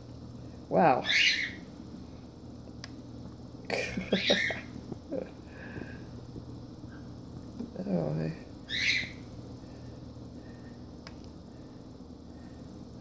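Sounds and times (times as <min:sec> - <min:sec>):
man laughing: 0:03.7 - 0:05.4
faint click: 0:11.0 - 0:11.4.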